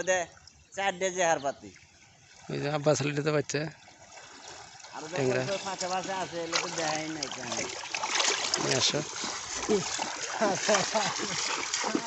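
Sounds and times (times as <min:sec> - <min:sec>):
water trickling and sloshing: 0:00.0 - 0:12.0
man speaking: 0:02.5 - 0:03.8, 0:04.9 - 0:07.8, 0:08.6 - 0:12.0.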